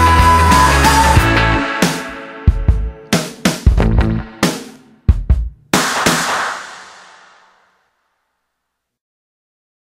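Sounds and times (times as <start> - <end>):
rock band chord ringing: 0.8 - 7.4
cymbal crash: 5.8 - 7.7.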